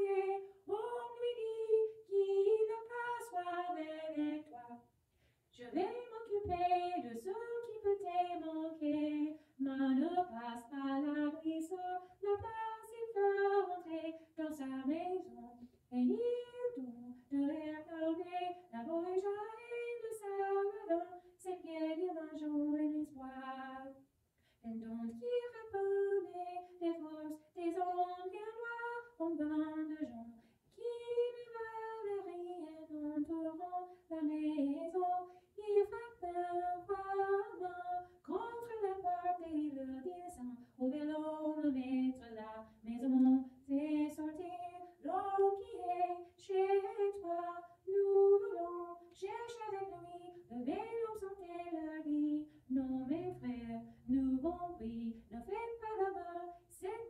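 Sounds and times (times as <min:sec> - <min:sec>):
woman singing: 0:00.0 - 0:04.9, 0:05.5 - 0:24.0, 0:24.6 - 0:57.0.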